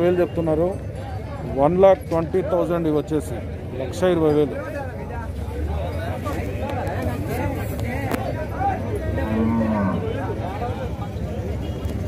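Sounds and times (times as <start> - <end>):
murmur of voices: 0.0 - 12.0
bull lowing: 9.1 - 10.3.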